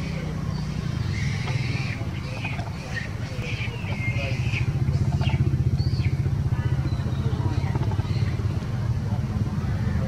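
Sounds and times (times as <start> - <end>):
young macaque squealing: 0.9 - 6.0.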